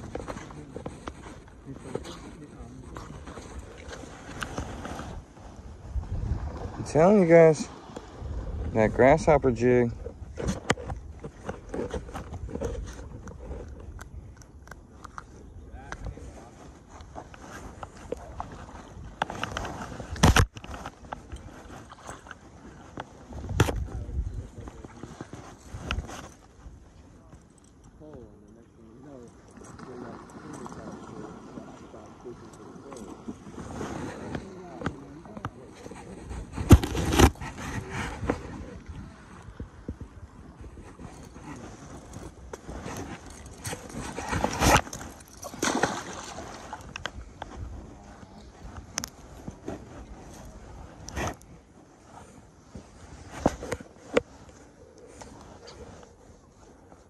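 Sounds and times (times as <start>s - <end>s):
muffled voices: 0.0s - 4.5s, 27.0s - 39.6s
handling rustling: 0.0s - 57.0s.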